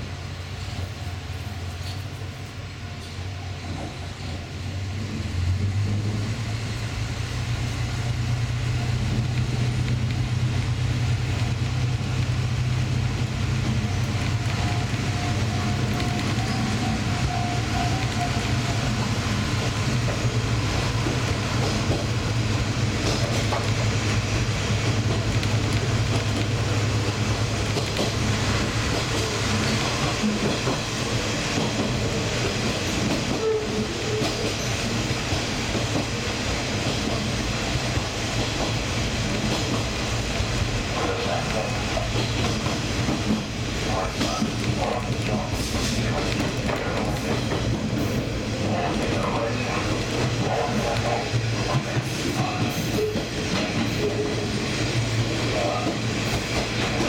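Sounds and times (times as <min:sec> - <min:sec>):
diesel train engine drone: 0:00.0 - 0:57.0.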